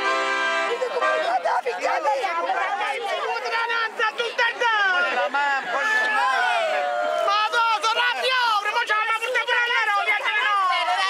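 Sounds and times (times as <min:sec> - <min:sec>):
accordion chord: 0:00.0 - 0:02.0
people chatting: 0:00.6 - 0:11.0.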